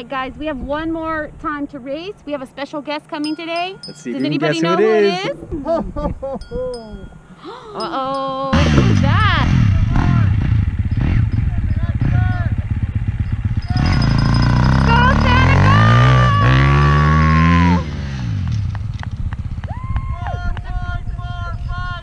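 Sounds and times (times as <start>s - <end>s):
people's voices: 0.0s - 10.4s, 13.7s - 17.2s
dirt bike engine revving: 8.5s - 19.7s.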